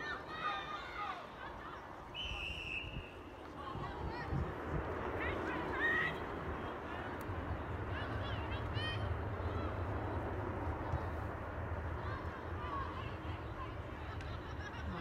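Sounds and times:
distant shouts and calls: 0:00.0 - 0:04.4.

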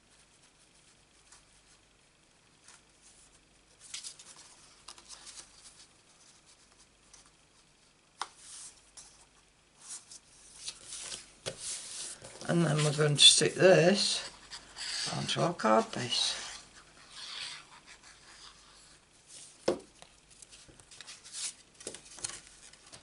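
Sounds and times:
paper rustling and sliding: 0:02.6 - 0:07.3, 0:08.2 - 0:13.3, 0:20.3 - 0:23.0.

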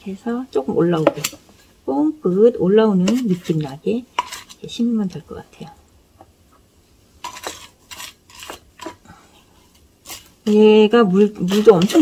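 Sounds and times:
potting mix crunching: 0:07.2 - 0:09.0, 0:10.0 - 0:12.0.

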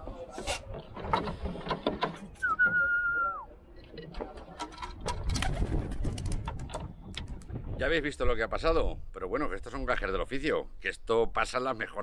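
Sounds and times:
sharp clicks and flutters: 0:04.6 - 0:07.5.

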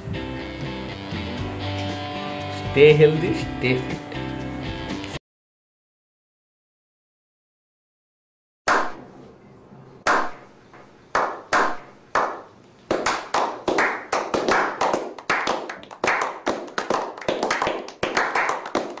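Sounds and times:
slow hand claps with echo: 0:11.1 - 0:19.0
small group applause: 0:11.2 - 0:19.0.

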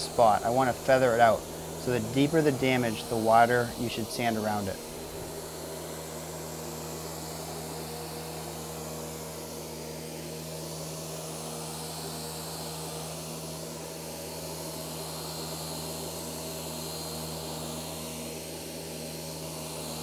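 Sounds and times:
dust extractor hissing: 0:00.0 - 0:18.5
orbital sander on wood floor: 0:00.0 - 0:20.0.

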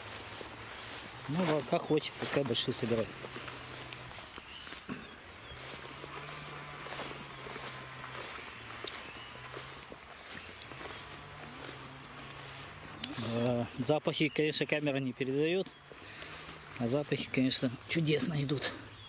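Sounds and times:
footsteps rustling tall grass: 0:00.0 - 0:19.0
insects chirring: 0:00.0 - 0:19.0.

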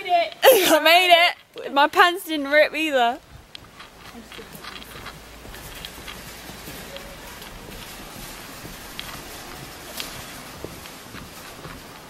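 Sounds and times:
steady background hiss: 0:00.0 - 0:12.0
footsteps on boardwalk: 0:00.1 - 0:12.0.

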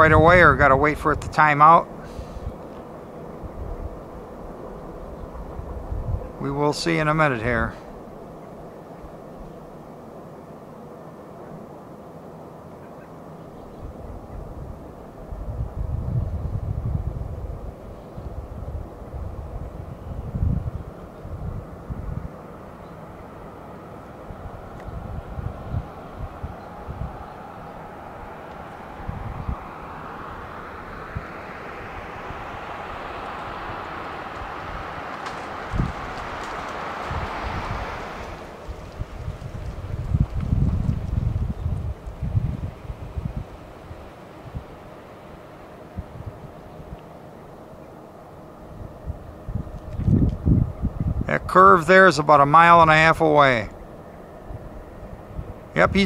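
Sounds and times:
wind buffeting microphone: 0:00.0 - 0:10.2, 0:13.5 - 0:56.0
distant idling diesel locomotive: 0:00.0 - 0:49.9, 0:51.7 - 0:56.0
hiss: 0:02.0 - 0:02.6.

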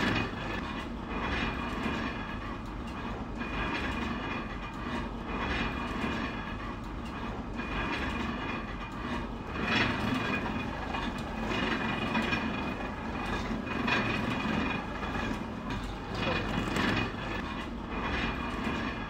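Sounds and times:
motor-driven grinders rumbling: 0:00.0 - 0:19.0.

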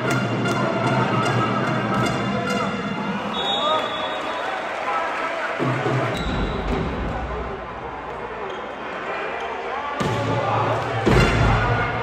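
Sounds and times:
crowd voices echoing: 0:00.0 - 0:12.0.

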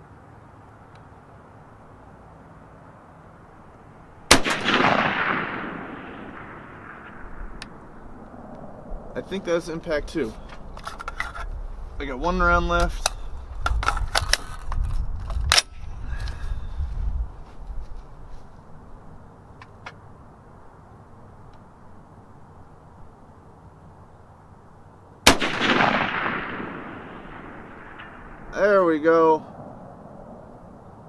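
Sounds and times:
rifle shot echoing: 0:04.2 - 0:08.8, 0:25.2 - 0:28.8
rifle handling clicks: 0:12.8 - 0:15.8.

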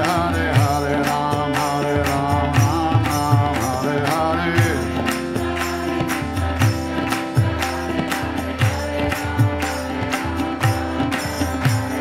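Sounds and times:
harmonium chords: 0:00.0 - 0:12.0
tabla beat: 0:00.0 - 0:12.0.

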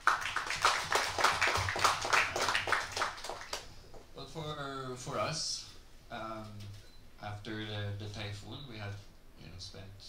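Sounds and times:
scattered clapping: 0:00.0 - 0:04.0.

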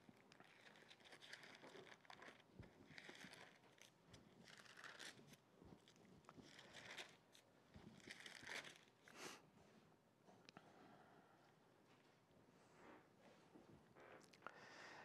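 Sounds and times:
pages being turned: 0:00.0 - 0:09.0.

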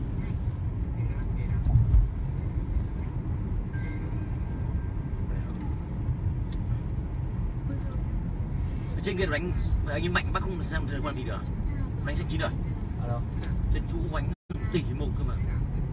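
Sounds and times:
engine and tyre rumble: 0:00.0 - 0:15.9.

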